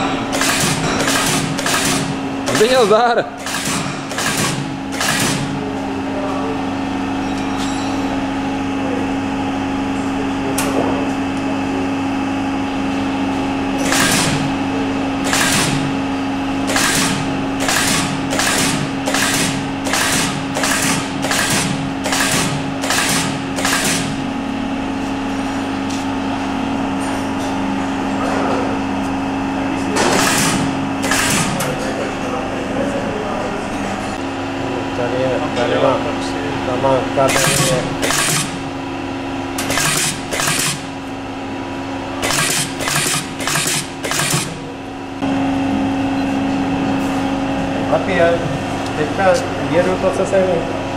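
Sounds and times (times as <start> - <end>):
factory hum: 0.0 - 50.9
lasting machine sharp strokes: 16.6 - 24.2, 30.2 - 31.6, 37.3 - 38.7, 39.6 - 40.9, 42.2 - 44.6.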